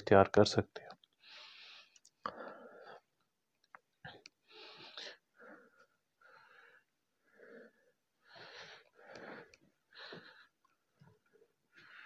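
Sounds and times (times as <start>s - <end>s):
wheezy heavy breathing: 4.1s - 12.0s.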